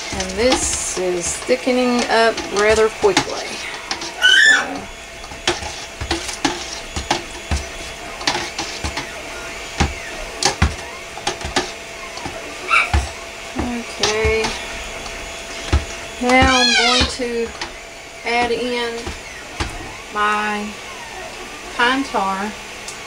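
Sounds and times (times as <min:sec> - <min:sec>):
blender knocking against pot: 0:00.0 - 0:20.4
stick blender humming: 0:00.0 - 0:23.0.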